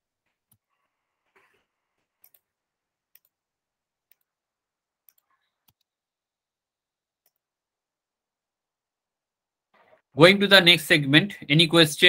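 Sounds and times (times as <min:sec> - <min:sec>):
computer mouse clicks: 0:00.4 - 0:03.4, 0:04.0 - 0:04.4, 0:05.0 - 0:06.0, 0:07.2 - 0:07.5.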